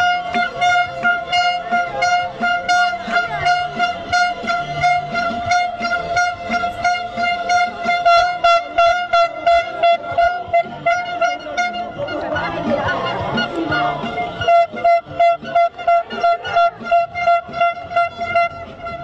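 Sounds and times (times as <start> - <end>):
regular beat: 0.0 - 19.0
steady horn-like tone: 0.0 - 19.0.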